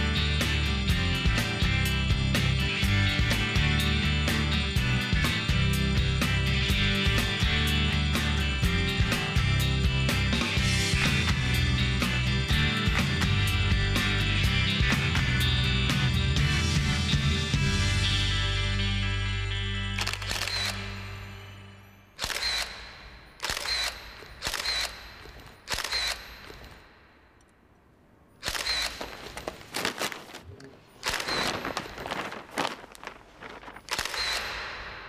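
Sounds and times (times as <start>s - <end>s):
camera shutter click: 20.0s - 20.9s, 22.2s - 26.6s, 28.4s - 29.3s, 31.0s - 31.5s, 33.9s - 34.7s.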